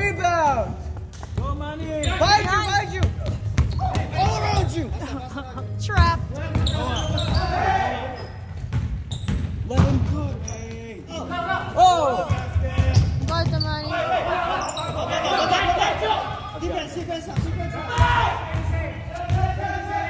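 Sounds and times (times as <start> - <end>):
players calling out: 1.8 - 8.5, 9.7 - 20.0.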